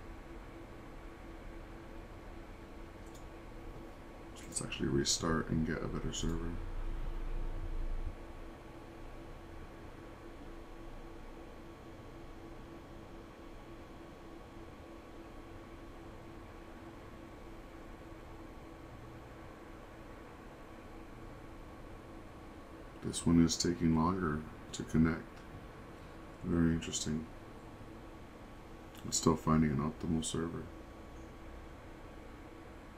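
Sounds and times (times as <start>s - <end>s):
low electrical hum: 0.0s - 32.9s.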